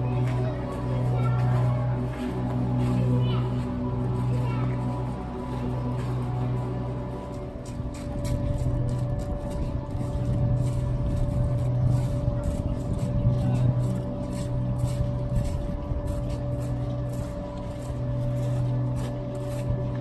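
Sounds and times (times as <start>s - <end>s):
electric air blowers humming: 0.0s - 20.0s.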